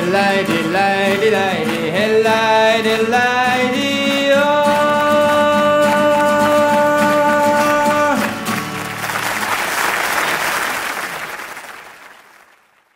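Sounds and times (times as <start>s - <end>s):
live folk song: 0.0s - 12.3s
audience applause: 7.1s - 12.9s.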